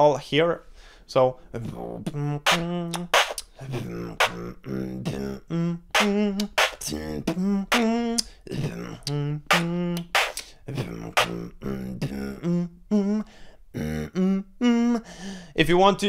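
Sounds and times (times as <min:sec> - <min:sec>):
beatboxing drum sounds: 0:01.6 - 0:12.6
hummed bass line: 0:01.6 - 0:13.2, 0:13.8 - 0:15.0.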